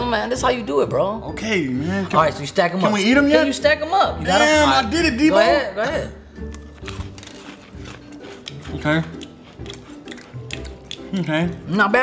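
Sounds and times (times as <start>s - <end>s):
quiet background music: 0.0s - 12.0s
crackers being chewed: 6.4s - 11.8s.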